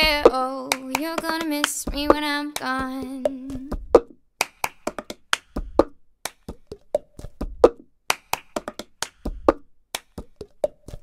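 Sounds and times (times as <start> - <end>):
hand claps: 0.7 - 2.9, 4.4 - 6.6, 7.6 - 11.0.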